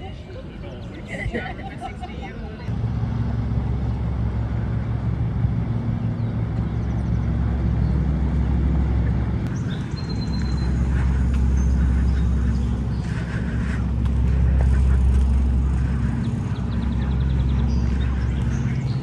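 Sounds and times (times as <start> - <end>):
motor engine humming: 0.7 - 19.0.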